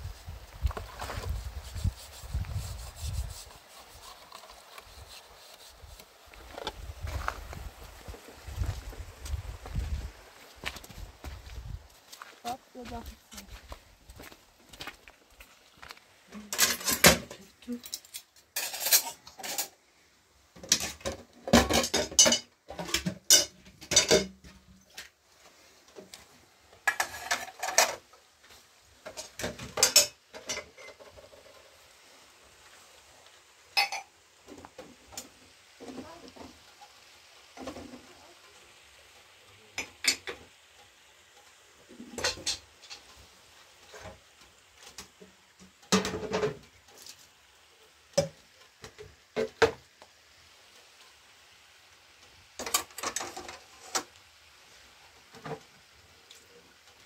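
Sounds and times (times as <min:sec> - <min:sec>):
dishes and utensils clattering: 0:16.5 - 0:19.8, 0:20.6 - 0:24.5, 0:26.8 - 0:28.0, 0:29.0 - 0:31.6, 0:33.8 - 0:34.1, 0:39.8 - 0:40.4, 0:42.0 - 0:43.1, 0:45.7 - 0:46.7.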